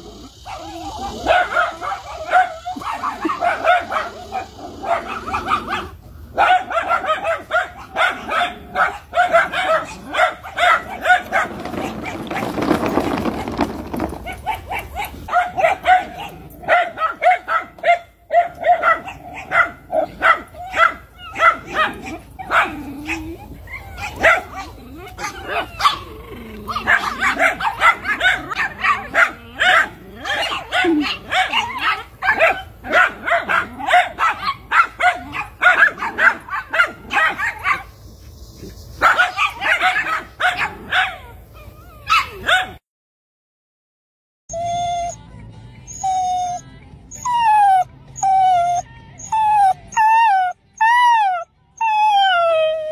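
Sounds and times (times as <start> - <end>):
dog barking: 0.4 - 12.2, 14.4 - 37.9, 39.0 - 41.4, 42.1 - 42.8.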